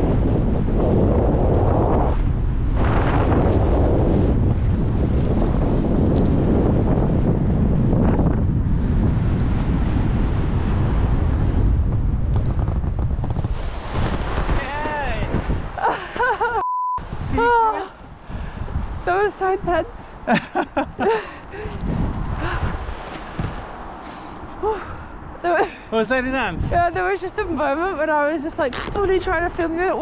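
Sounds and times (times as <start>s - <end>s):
wind buffeting microphone: 0.0s - 30.0s
person calling out: 17.3s - 17.9s.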